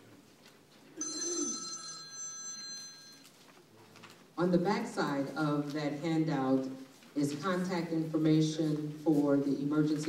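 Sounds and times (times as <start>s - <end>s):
bright bell ringing: 1.0s - 3.4s.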